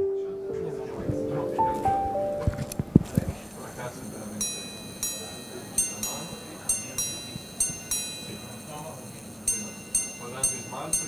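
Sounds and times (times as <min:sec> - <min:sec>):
pocket watch chiming on gongs: 0:03.5 - 0:11.0.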